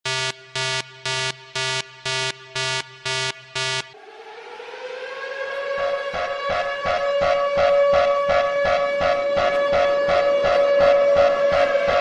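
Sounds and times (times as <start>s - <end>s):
regular pulsing: 0.1s - 4.1s
warning siren wailing: 0.1s - 12.0s.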